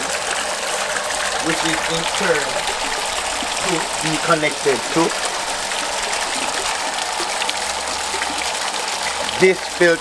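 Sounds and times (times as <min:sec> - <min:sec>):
water flowing and splashing: 0:00.0 - 0:10.0.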